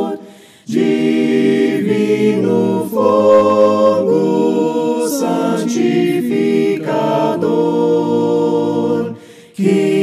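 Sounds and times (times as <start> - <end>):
group singing hymn a cappella: 0.0 - 10.0.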